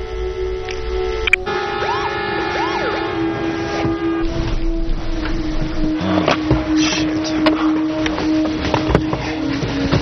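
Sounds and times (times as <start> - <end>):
siren sweeping up and down: 0.0 - 7.8
held horn-like tones: 0.0 - 9.6.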